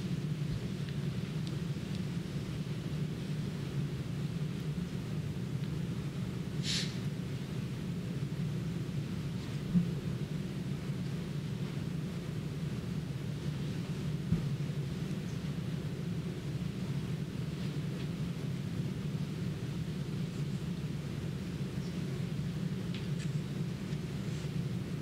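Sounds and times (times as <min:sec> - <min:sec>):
low room rumble and hum: 0:00.0 - 0:25.0.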